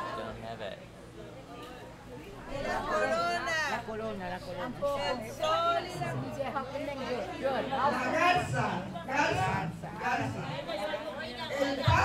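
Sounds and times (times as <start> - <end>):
people chatting in a large room: 0.0 - 12.0.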